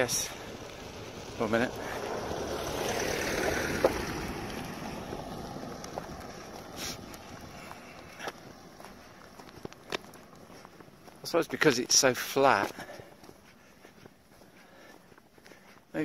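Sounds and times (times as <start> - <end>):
car driving on gravel: 0.0 - 16.0.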